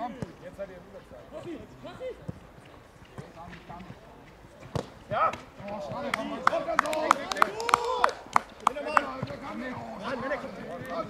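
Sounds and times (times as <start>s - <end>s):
ball being kicked: 3.1s - 4.0s, 4.6s - 6.1s
players shouting: 5.0s - 11.0s.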